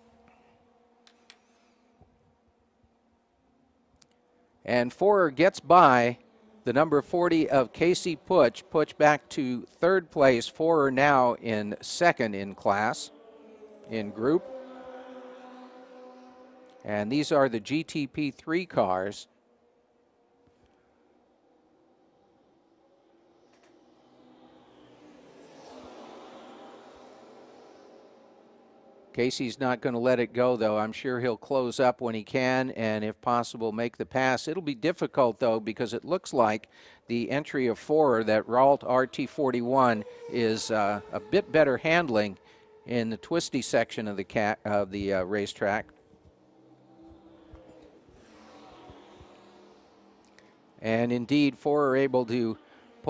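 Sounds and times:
racing car engines passing: 0:00.0 - 0:53.0
faint clicks: 0:23.5 - 0:23.8.

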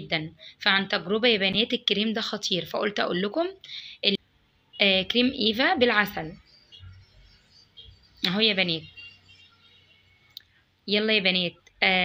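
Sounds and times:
woman speaking: 0:00.0 - 0:04.2, 0:04.8 - 0:06.4, 0:08.2 - 0:08.9, 0:10.9 - 0:12.0.

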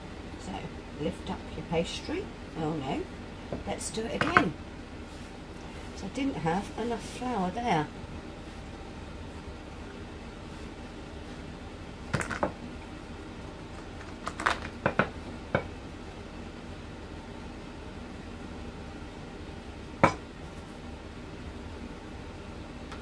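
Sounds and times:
steady low hum: 0:00.0 - 0:23.0
rolling pin knocking on board: 0:20.0 - 0:20.2.

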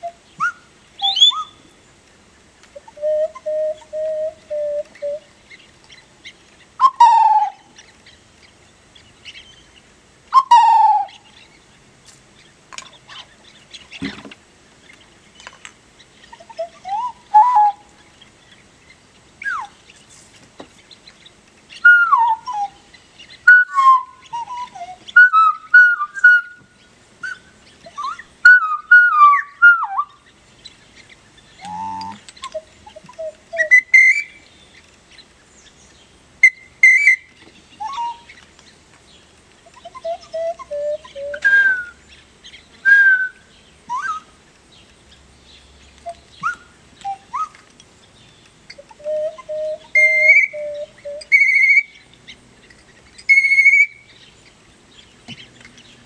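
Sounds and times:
bird-call whistle notes: 0:00.0 - 0:01.6, 0:02.9 - 0:05.2, 0:06.8 - 0:07.6, 0:10.3 - 0:11.2, 0:16.5 - 0:17.9, 0:19.4 - 0:19.8, 0:21.8 - 0:22.8, 0:23.4 - 0:30.2, 0:31.6 - 0:34.4, 0:36.4 - 0:38.4, 0:39.7 - 0:42.0, 0:42.8 - 0:44.3, 0:46.0 - 0:47.6, 0:48.7 - 0:52.0, 0:53.2 - 0:54.2.

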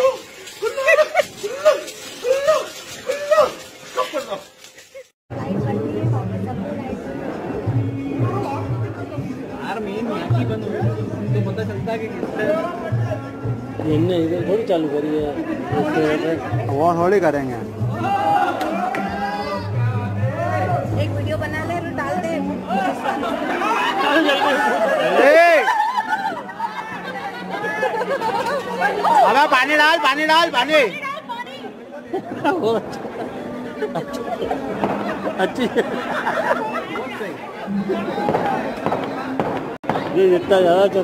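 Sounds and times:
people talking over one another: 0:05.3 - 0:41.0.

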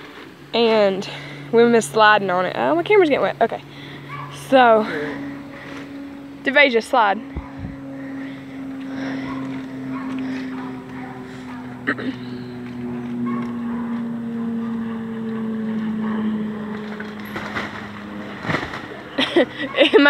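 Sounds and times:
atv engine idling: 0:00.0 - 0:20.0.

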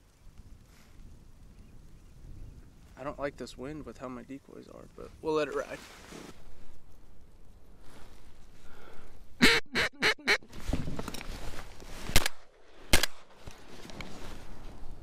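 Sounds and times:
duck quacking: 0:09.4 - 0:10.4
shotgun shots: 0:12.1 - 0:13.3.

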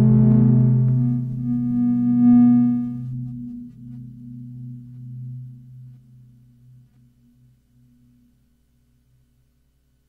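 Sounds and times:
electronic drone tones: 0:00.0 - 0:07.0.

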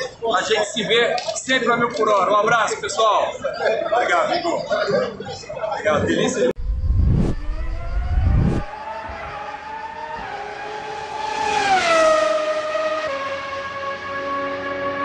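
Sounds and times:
deep rumble: 0:06.6 - 0:08.7
race car engine passing by: 0:06.7 - 0:15.0.

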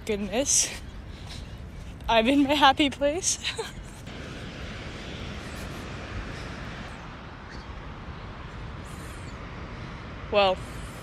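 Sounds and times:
ocean surf breaking on beach: 0:04.1 - 0:11.0.

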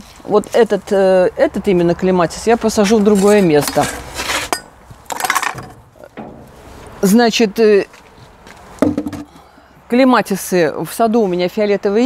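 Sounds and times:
small objects rustling and clinking: 0:03.0 - 0:06.6.

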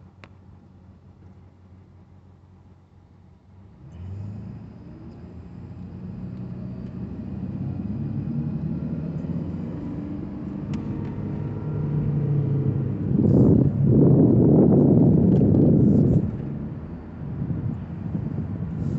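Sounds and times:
car drivetrain and road noise: 0:00.0 - 0:18.9
low hum: 0:04.4 - 0:18.9.

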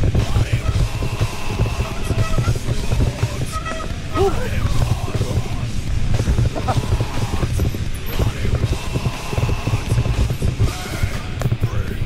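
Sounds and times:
mountain bike rattling over trail: 0:00.0 - 0:12.0
music: 0:00.0 - 0:12.0.

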